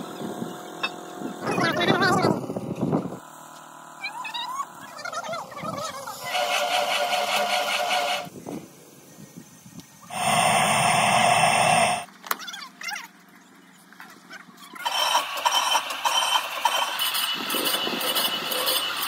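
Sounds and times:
furnace burner roaring: 10.0s - 12.1s.

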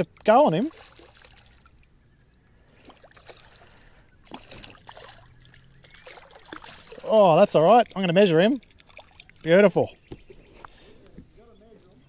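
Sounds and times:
water splashing and trickling: 0.0s - 2.0s, 2.6s - 10.1s.

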